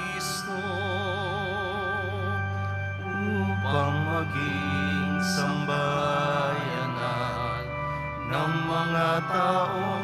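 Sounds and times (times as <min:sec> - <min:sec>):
slow music with held chords: 0:00.0 - 0:10.0
wavering melody line: 0:00.0 - 0:10.0.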